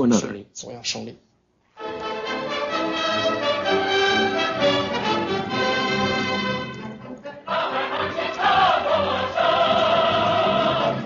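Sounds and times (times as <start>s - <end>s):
chorus singing: 1.8s - 11.0s.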